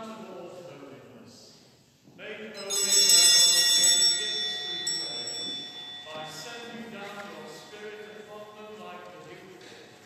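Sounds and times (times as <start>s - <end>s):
hand bells jangling: 2.6s - 8.2s.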